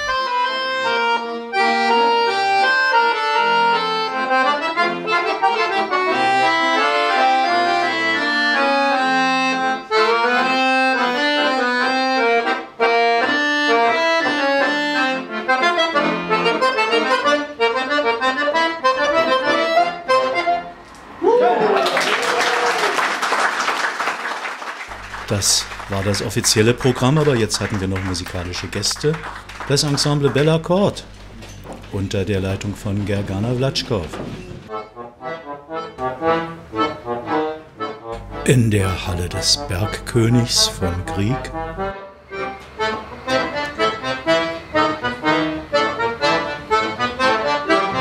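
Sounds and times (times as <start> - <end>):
accordion duet: 0.0 - 21.1, 24.9 - 34.1, 34.7 - 48.0
applause: 21.7 - 30.6.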